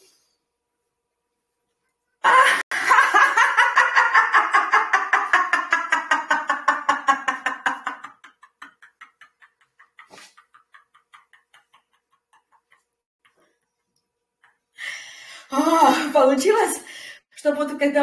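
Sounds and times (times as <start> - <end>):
woman laughing breathlessly: 2.2 - 13.6.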